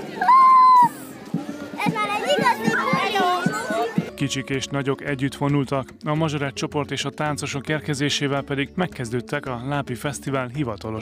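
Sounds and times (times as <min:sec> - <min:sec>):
children chattering and calling out: 0:00.0 - 0:04.4.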